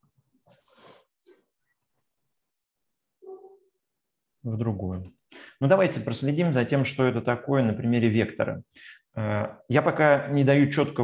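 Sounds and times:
faint breathing: 5.3s - 5.6s, 8.7s - 9.1s.

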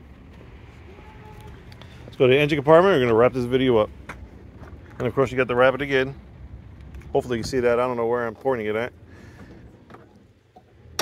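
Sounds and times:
faint low rumble: 0.0s - 11.0s.

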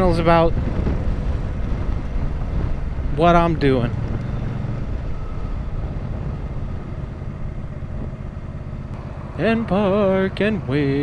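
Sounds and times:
wind noise on microphone: 0.0s - 8.8s
motorcycle engine rumble: 0.0s - 11.0s.

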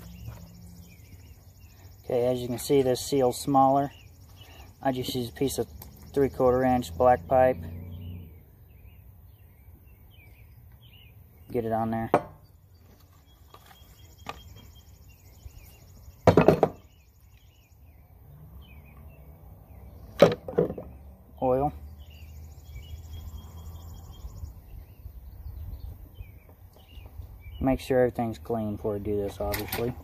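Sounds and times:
sharp knocks of metal tools: 12.0s - 12.5s, 16.2s - 16.8s, 29.3s - 30.0s.

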